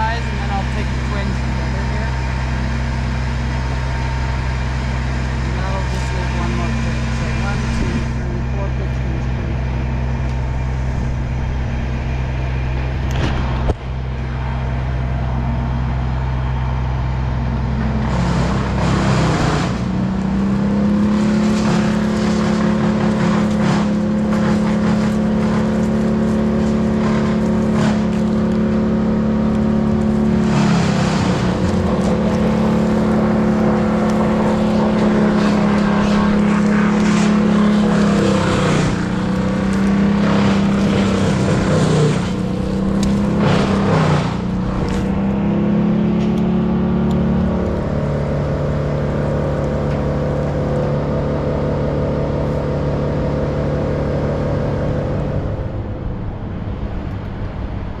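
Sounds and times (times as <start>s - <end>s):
crane engine idling and revving: 0.0s - 58.0s.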